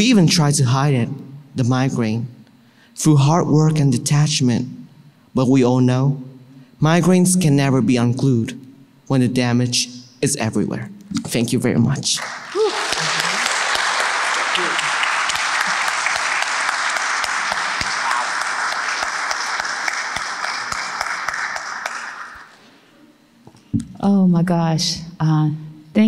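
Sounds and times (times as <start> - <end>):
audience applauding: 12.2 - 22.6.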